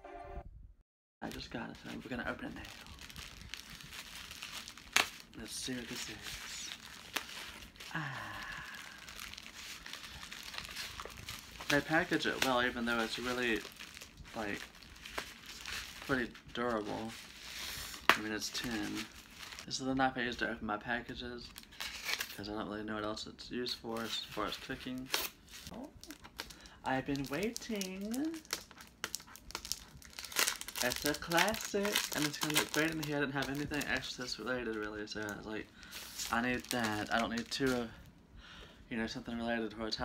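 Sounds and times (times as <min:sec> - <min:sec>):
plastic bag crinkling: 0:01.2 - 0:19.7, 0:23.9 - 0:38.1.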